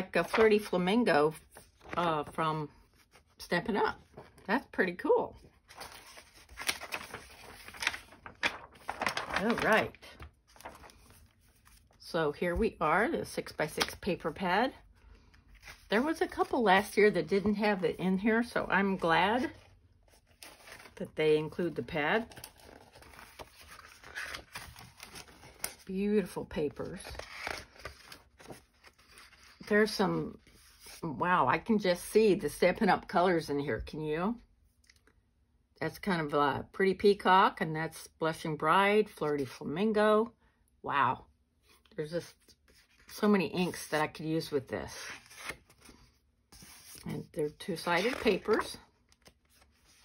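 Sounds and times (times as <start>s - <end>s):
soft paper rustle: 0.0s - 3.4s, 5.3s - 12.9s, 13.8s - 29.7s, 41.6s - 44.1s, 44.9s - 50.0s.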